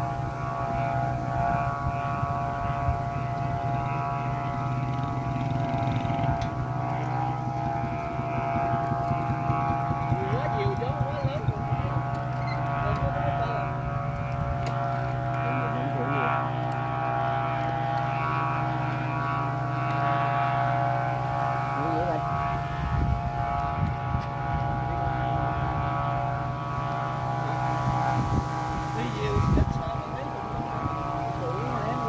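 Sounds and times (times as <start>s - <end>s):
kite flutes holding a chord: 0.0s - 32.0s
wind buffeting microphone: 0.0s - 32.0s.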